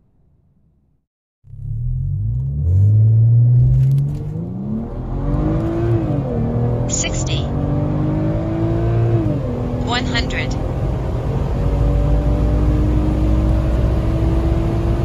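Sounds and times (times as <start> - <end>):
car engine accelerating: 1.4 - 15.0.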